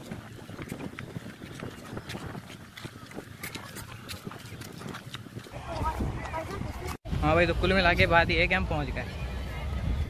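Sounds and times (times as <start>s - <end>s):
footsteps on gravelly ground: 0.0s - 7.0s.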